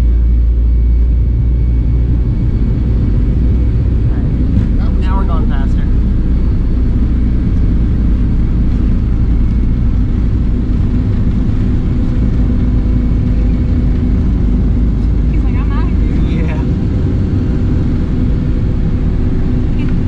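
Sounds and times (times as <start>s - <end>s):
jet engines roaring in cabin: 0.0s - 20.0s.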